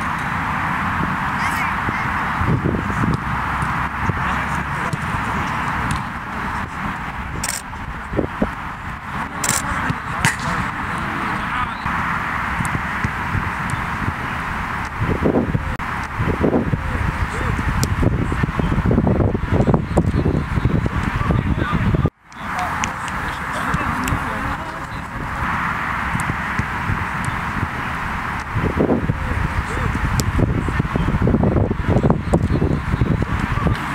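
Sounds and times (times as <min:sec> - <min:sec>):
steady outdoor hiss: 0:00.0 - 0:33.9
football kick smack: 0:09.9 - 0:10.6.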